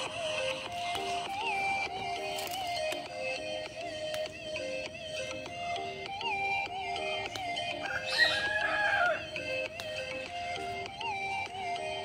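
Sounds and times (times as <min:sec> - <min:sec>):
background music: 0:00.0 - 0:12.0
rooster crowing: 0:07.8 - 0:09.4.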